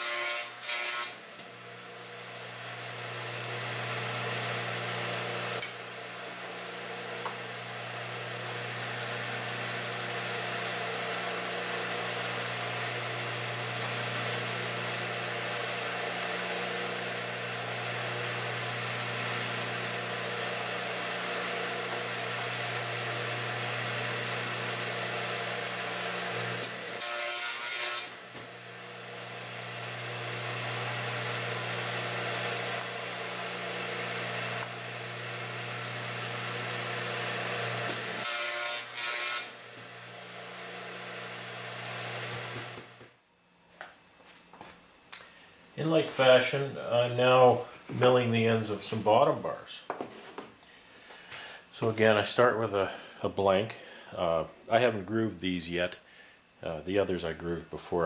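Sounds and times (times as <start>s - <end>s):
radial arm saw cutting wood: 0.0s - 43.1s.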